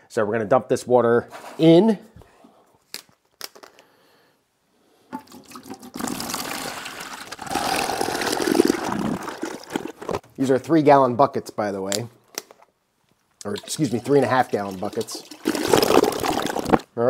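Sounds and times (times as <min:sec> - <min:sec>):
water pouring into plastic bucket: 0:05.1 - 0:10.2, 0:13.4 - 0:16.9.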